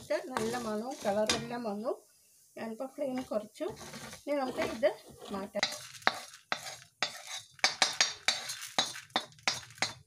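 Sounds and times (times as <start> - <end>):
metal scraping on steel plate: 0.0 - 1.6, 3.2 - 10.0.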